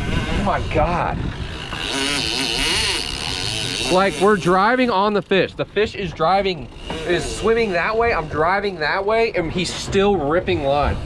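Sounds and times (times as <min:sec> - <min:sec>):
wind on microphone: 0:00.0 - 0:04.6, 0:05.5 - 0:11.0
fishing reel drag whine: 0:00.0 - 0:05.4, 0:06.6 - 0:09.1
outboard engines running: 0:00.0 - 0:11.0.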